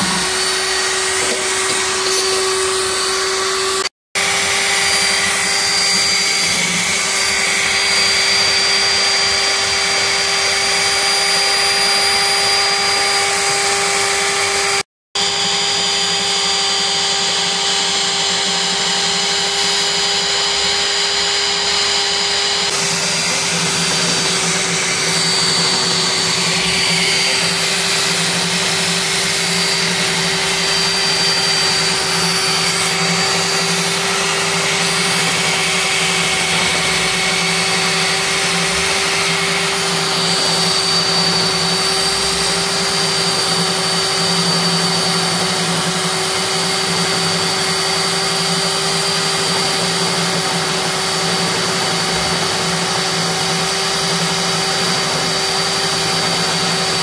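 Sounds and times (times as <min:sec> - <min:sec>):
core drill motor whining: 0:00.0 - 0:57.0.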